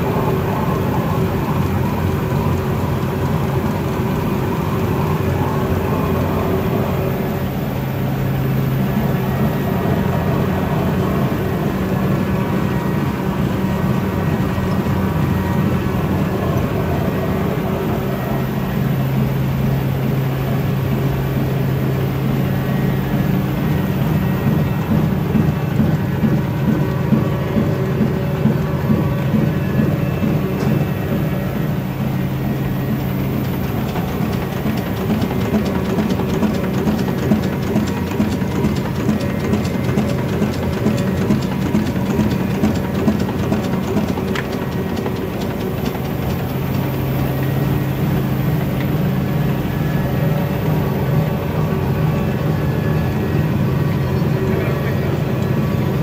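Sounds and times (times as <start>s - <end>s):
printing press low hum: 0.0s - 56.0s
printing press rapid clatter: 19.2s - 50.1s.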